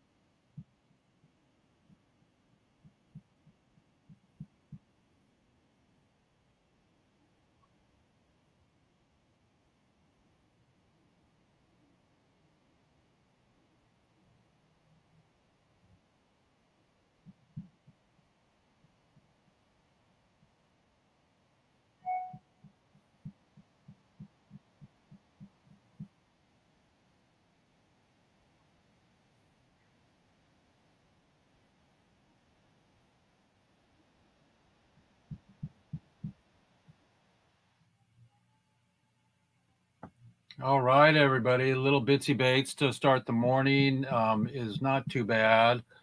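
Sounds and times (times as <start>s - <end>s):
soft low thumps: 35.3s - 36.4s.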